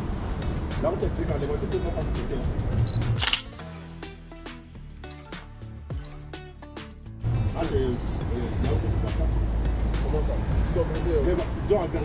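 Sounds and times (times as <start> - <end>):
street noise with voices: 0.0 - 3.8, 7.2 - 12.0
background music: 0.0 - 12.0
camera shutter click: 2.9 - 3.6.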